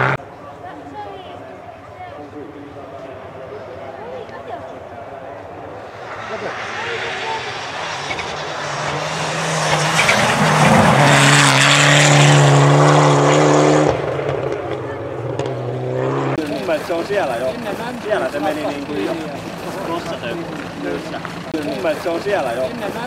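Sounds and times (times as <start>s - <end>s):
rally car engine passing: 0.0s - 0.3s, 4.8s - 23.0s
tyre and road noise: 0.0s - 23.0s.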